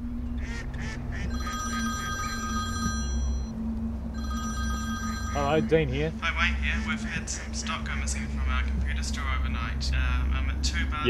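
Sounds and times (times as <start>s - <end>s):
low hum: 0.0s - 11.0s
mobile phone ringing: 1.2s - 3.5s, 4.1s - 6.2s.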